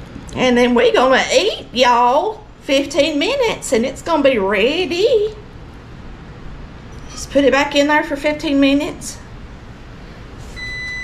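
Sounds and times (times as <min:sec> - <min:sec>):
electronic appliance beep: 0:10.6 - 0:11.0.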